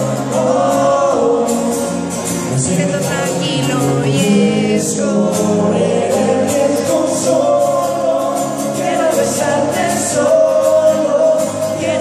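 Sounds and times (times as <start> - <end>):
acoustic guitars: 0.0 - 12.0
men singing together: 0.0 - 12.0.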